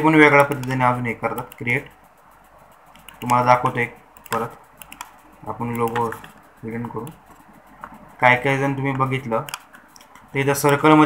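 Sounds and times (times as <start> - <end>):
man speaking: 0.0 - 2.0, 3.2 - 4.7, 5.4 - 7.2, 8.2 - 9.6, 10.3 - 11.0
keyboard and mouse clicks: 0.2 - 11.0.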